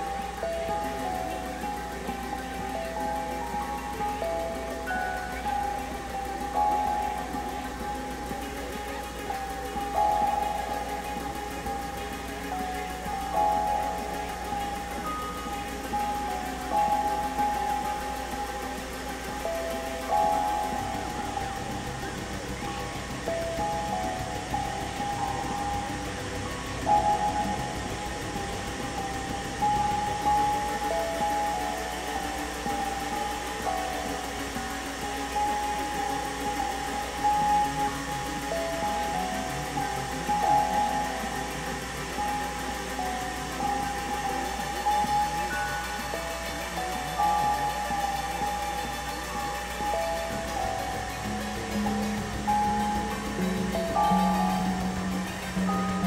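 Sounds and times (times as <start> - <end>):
high synthesizer tone stepping pitches: 0.0 - 56.0
low synthesizer drone: 0.0 - 56.0.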